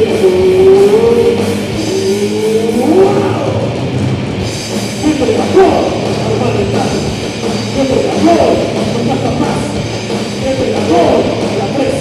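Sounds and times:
bending lead guitar note: 0.0 - 6.8
rock band playing live: 0.0 - 12.0.

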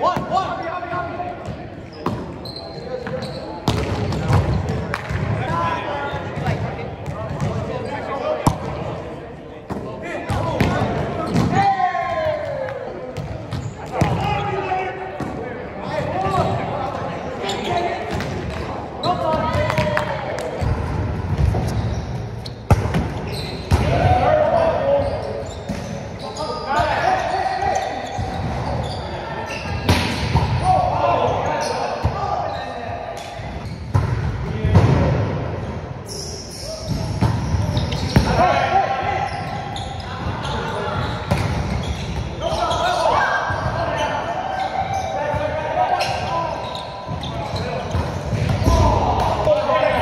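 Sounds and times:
players calling and shouting: 0.0 - 50.0.

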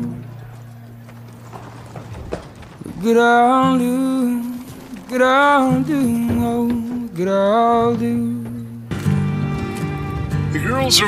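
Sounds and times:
soft horse hoofbeats: 0.0 - 11.0.

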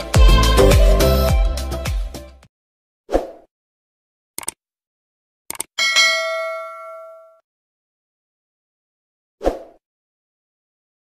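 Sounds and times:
notification bell ding: 5.8 - 7.4.

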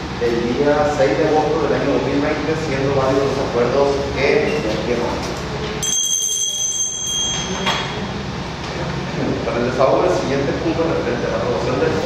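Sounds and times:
handbell ringing: 5.8 - 8.1.

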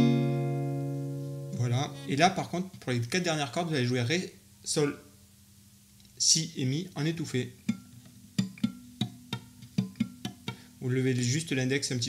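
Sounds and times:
low guitar note ringing: 0.0 - 2.2
muted acoustic guitar strums: 0.0 - 2.2, 7.6 - 11.3.

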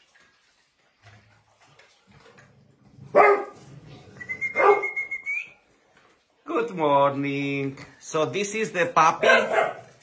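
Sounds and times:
dog barking: 3.1 - 3.6, 4.6 - 5.0, 9.2 - 10.0.

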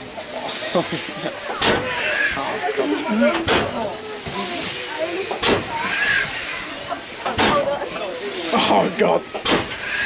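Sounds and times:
people's voices: 0.0 - 10.0
steam hissing: 0.0 - 10.0.

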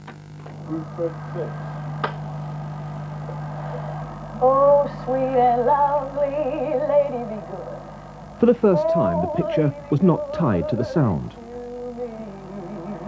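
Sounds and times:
low electrical hum: 0.0 - 13.0
person singing with vibrato: 4.3 - 13.0.

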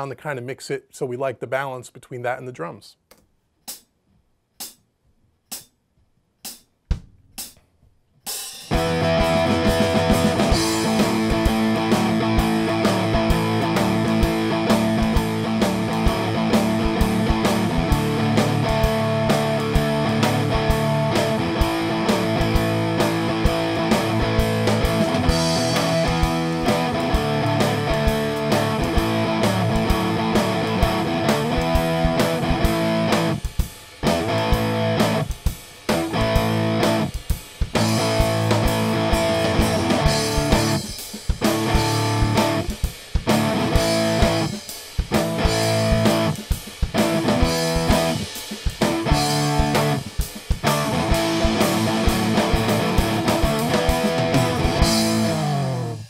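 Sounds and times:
drum track: 3.6 - 56.0
electric guitar playing: 8.7 - 56.0.

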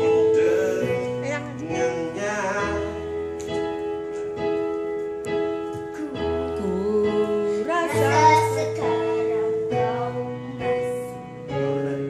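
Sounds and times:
sustained keyboard chords: 0.0 - 12.0
high singing voice: 6.0 - 12.0.

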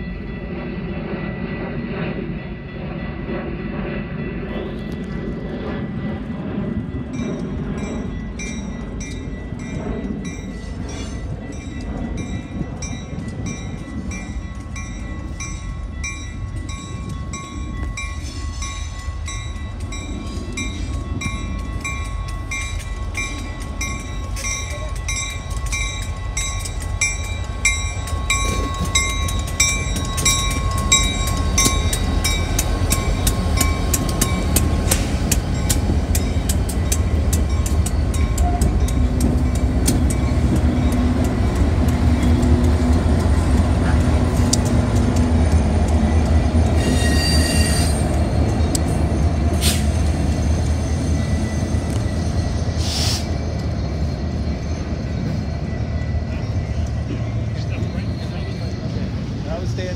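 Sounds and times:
crossing bell ringing: 0.0 - 3.5, 4.2 - 59.9
freight train engine rumble: 0.0 - 59.9
wheels clicking over rail joints: 7.2 - 52.3.

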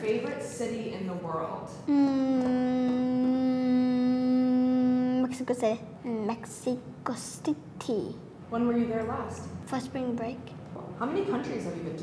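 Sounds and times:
boy humming: 1.9 - 5.5.

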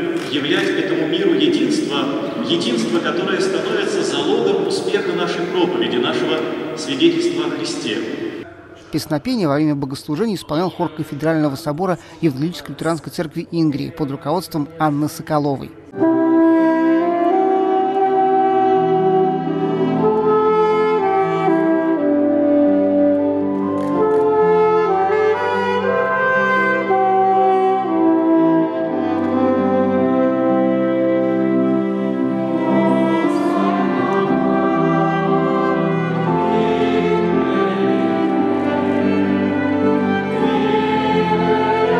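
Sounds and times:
saxophone playing hymn melody: 0.5 - 8.5, 15.9 - 41.9
sustained accompanying chords: 15.9 - 41.9.

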